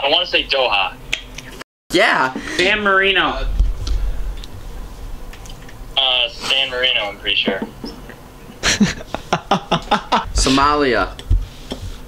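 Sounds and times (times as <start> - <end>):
low steady rumble: 2.0 - 12.0.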